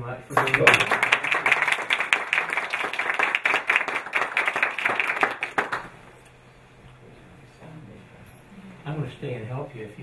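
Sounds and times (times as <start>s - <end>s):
audience applause: 0.3s - 6.0s.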